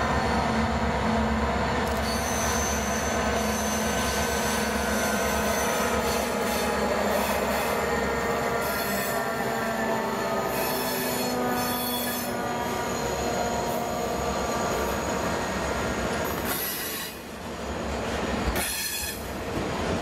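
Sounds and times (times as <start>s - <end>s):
diesel locomotive engines passing: 0.0s - 20.0s
low rumble of train: 0.0s - 20.0s
metallic wheel squeal: 2.0s - 7.7s, 10.4s - 13.3s.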